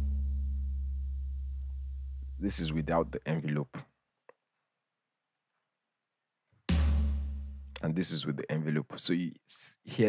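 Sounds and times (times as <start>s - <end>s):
electronic floor tom hit: 6.7s - 7.7s.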